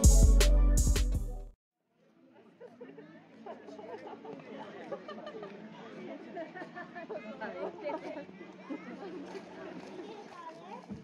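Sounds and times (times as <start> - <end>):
distant chatter of people: 2.4 - 11.0.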